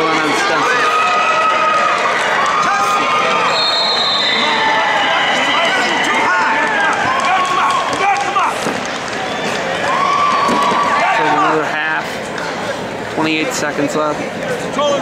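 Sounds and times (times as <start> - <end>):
crowd shouting: 0.0 - 11.8.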